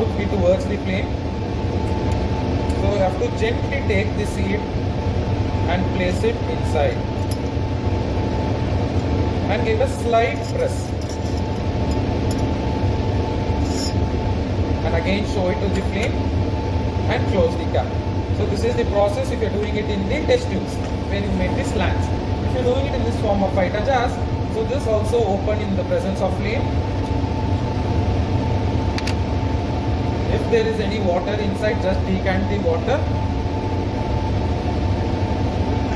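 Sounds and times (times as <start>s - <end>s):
blower fan hum: 0.0s - 35.9s
faint constant whine: 0.0s - 35.9s.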